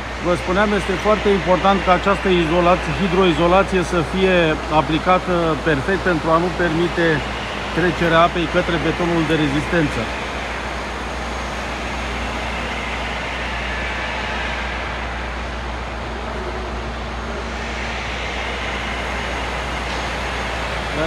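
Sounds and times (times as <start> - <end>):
machinery hum: 0.0 - 21.0
machinery roar: 0.0 - 21.0.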